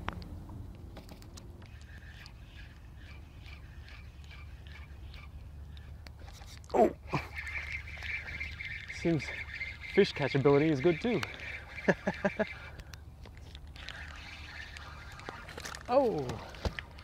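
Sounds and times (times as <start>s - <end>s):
fishing reel high rattle: 1.7s - 17.0s
fishing reel ticking: 1.7s - 17.0s.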